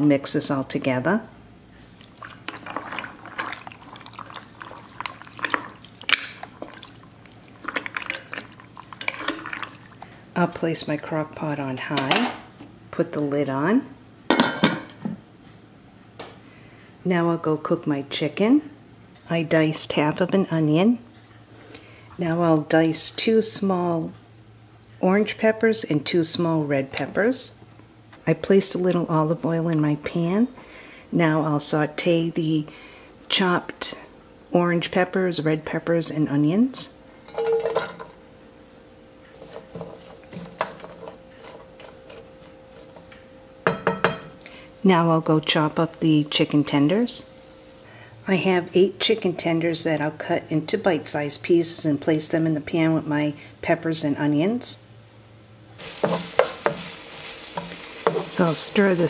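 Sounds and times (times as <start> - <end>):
faint steady hum: 0.0 - 59.0
wooden spoon scraping frying pan: 2.2 - 5.8, 7.6 - 9.8, 39.4 - 43.1, 55.8 - 59.0
glass lid clinking: 37.3 - 38.1
utensil clatter: 55.8 - 59.0.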